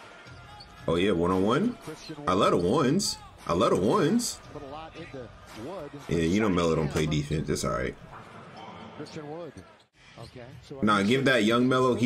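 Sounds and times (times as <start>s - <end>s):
commentator talking: 0.9s - 8.0s.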